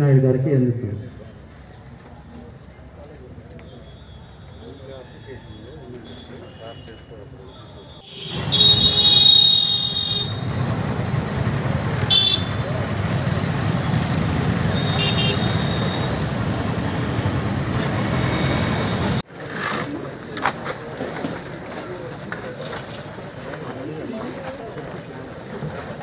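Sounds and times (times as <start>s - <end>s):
traffic rumble: 1.0s - 26.0s
high-pitched vehicle horn: 5.5s - 10.6s, 12.0s - 12.9s, 13.8s - 17.3s.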